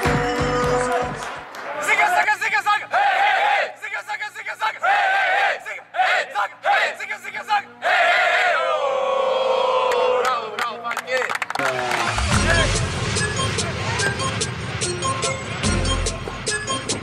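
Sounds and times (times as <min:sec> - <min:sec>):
team chanting and shouting together: 0:00.0 - 0:10.6.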